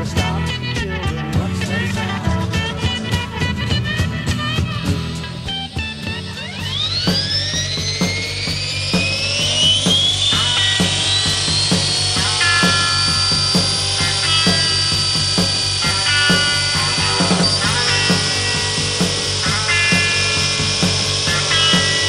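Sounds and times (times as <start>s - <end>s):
rock music with steady beat: 0.0s - 22.0s
model helicopter motor whining: 2.6s - 22.0s.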